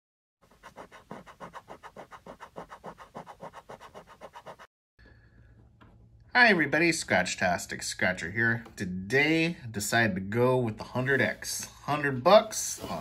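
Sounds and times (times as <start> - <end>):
coin scratching a ticket: 0.5 - 4.7.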